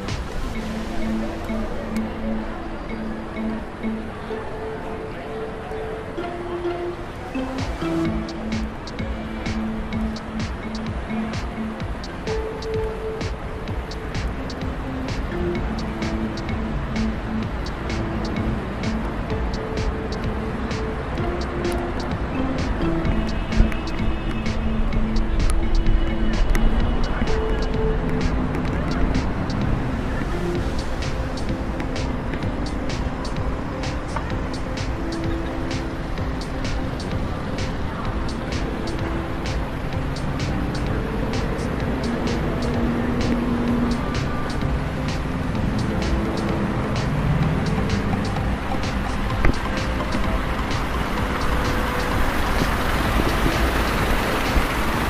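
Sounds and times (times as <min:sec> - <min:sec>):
low rumble of city traffic: 0:00.0 - 0:55.0
music with held notes: 0:00.0 - 0:55.0.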